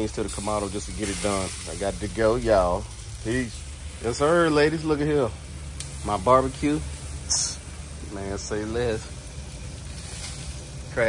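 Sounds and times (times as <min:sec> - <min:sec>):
chicken wings sizzling on grill: 0:00.0 - 0:11.0
low steady rumble: 0:00.0 - 0:11.0.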